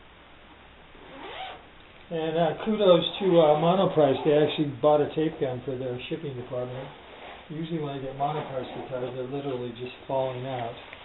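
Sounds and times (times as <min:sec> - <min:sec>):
zipper rasping open: 0:01.0 - 0:01.6, 0:03.2 - 0:05.6, 0:06.7 - 0:09.6.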